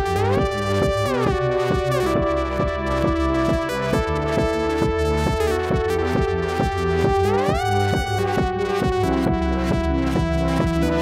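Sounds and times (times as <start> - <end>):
synthesizer chords and bass: 0.0 - 11.0.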